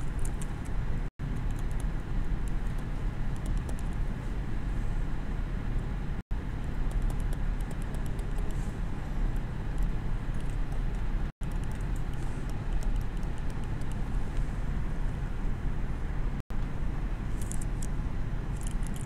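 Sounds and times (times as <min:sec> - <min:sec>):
low room rumble: 0:00.0 - 0:19.0.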